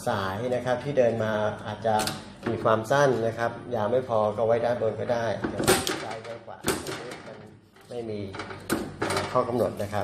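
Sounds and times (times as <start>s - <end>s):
man speaking: 0.0s - 8.4s, 9.2s - 10.0s.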